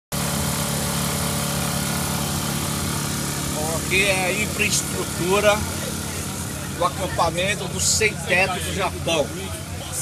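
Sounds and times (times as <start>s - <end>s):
generator engine humming: 0.1s - 10.0s.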